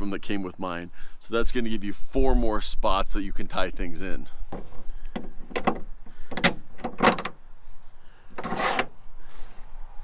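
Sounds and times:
cleat scraping along rail: 4.5 - 9.9.

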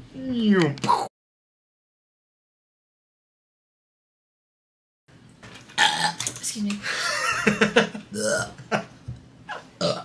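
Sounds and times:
embarrassed laughter: 6.9 - 8.9
woman burping: 8.1 - 8.6, 9.5 - 10.0.

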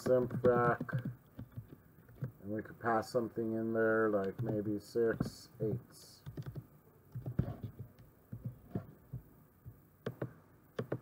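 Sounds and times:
typing on computer keyboard: 0.0 - 2.3, 4.2 - 4.7, 6.2 - 8.6, 10.0 - 11.0.

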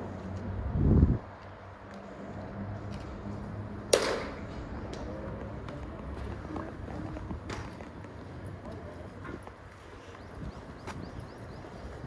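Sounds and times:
baseball bat striking ball: 3.9 - 4.5.

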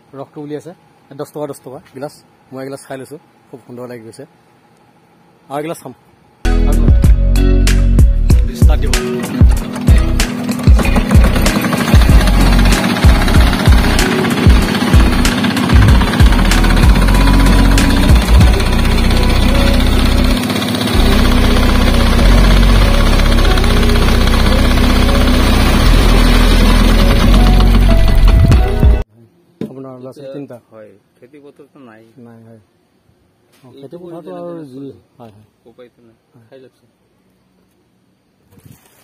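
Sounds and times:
small engine knocking: 9.4 - 29.0.

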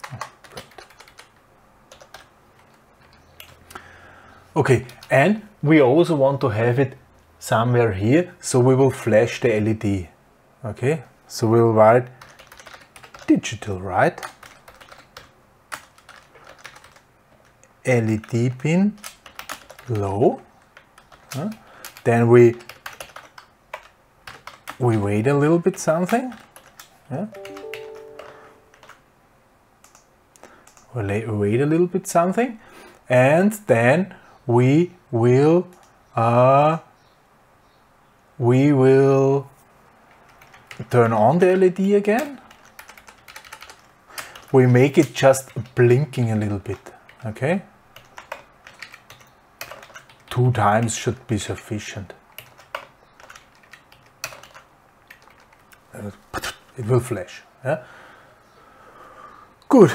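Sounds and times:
computer keyboard keystrokes: 0.0 - 3.8, 12.2 - 13.3, 14.2 - 25.0, 26.0 - 29.0, 29.8 - 30.9, 40.2 - 41.0, 42.2 - 45.8, 48.0 - 50.9, 52.3 - 55.8
short chord of steady tones: 27.3 - 28.8.

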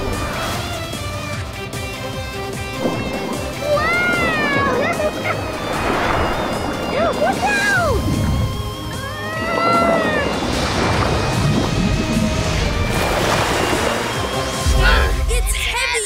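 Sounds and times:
water splash: 0.0 - 1.5, 2.6 - 15.4
underwater rushing water: 0.0 - 15.4
cartoon background music: 0.0 - 16.0.

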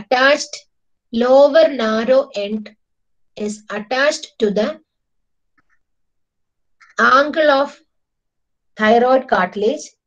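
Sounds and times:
woman speaking: 0.0 - 2.8, 3.4 - 4.9, 7.0 - 7.8, 8.8 - 10.0.

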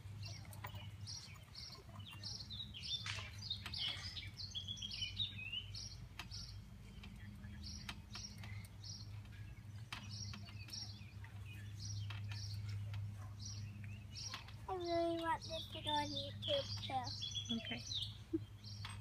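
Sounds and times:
birds chirping: 0.0 - 19.0
steady low hum: 0.0 - 19.0.

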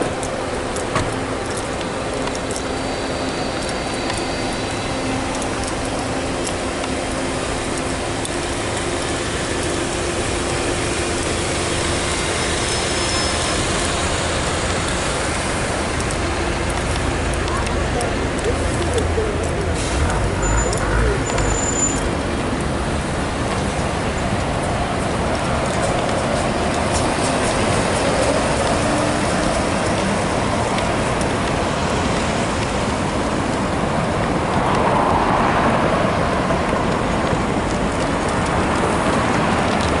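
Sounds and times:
city traffic noise: 0.0 - 40.0.

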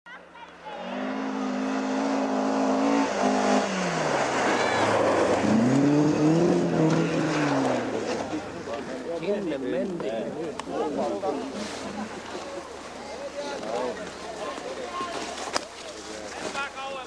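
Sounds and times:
noisy rush: 0.2 - 9.3
rally car engine revving: 0.8 - 9.1.

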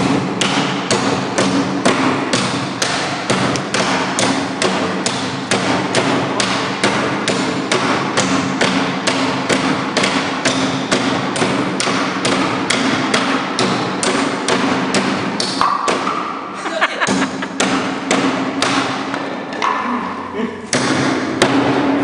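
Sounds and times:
knives chopping wooden boards: 0.0 - 16.3, 17.6 - 19.7, 20.7 - 21.9
person speaking: 19.5 - 20.8.

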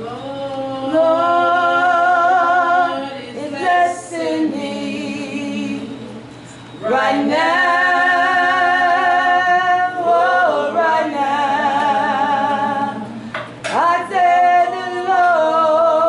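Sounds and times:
unaccompanied singing with vibrato: 0.0 - 16.0.

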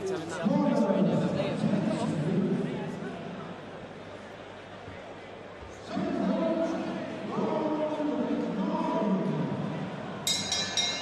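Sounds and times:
boxing ring bell: 10.3 - 11.0.

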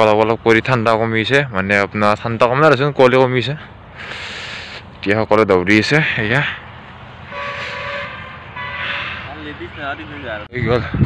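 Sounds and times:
horn blasts: 7.2 - 10.4.

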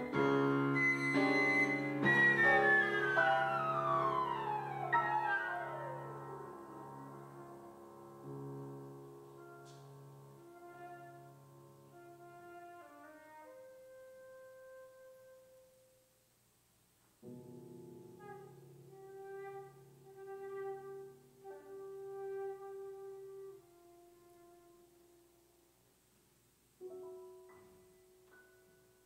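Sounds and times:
piano chords: 0.0 - 15.6, 17.2 - 25.5, 26.8 - 29.0
flute held notes: 0.6 - 8.1, 9.3 - 11.2.

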